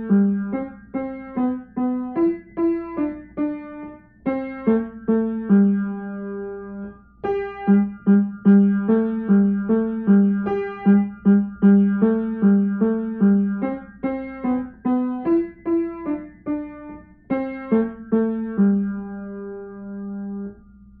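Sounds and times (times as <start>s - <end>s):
piano melody: 0.0s - 21.0s.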